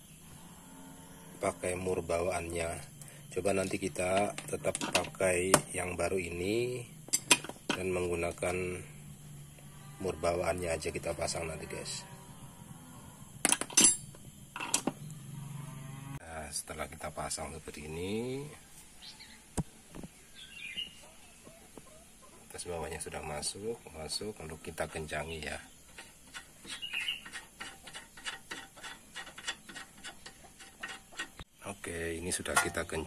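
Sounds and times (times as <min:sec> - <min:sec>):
metal parts clinking: 0:04.0 - 0:05.2, 0:07.1 - 0:07.9, 0:13.4 - 0:14.9, 0:32.5 - 0:32.9.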